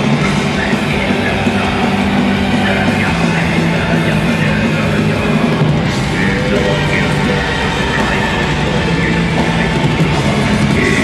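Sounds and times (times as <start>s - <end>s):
distorted electric guitars: 0.0s - 11.0s
drums: 0.0s - 11.0s.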